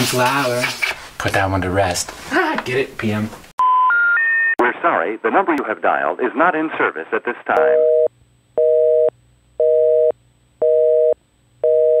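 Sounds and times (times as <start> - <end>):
telephone busy signal: 7.6 - 12.0.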